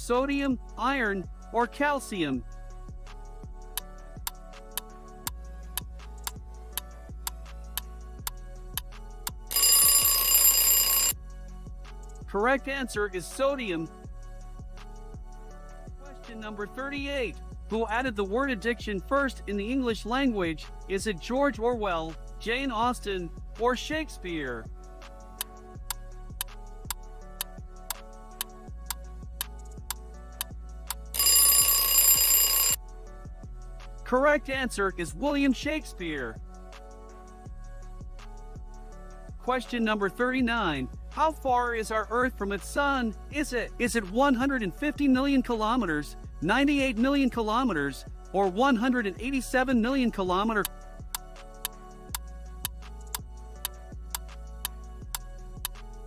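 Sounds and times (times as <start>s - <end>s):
soft background music: 0.0s - 56.0s
alarm clock bell ringing: 9.5s - 11.2s, 31.2s - 32.8s.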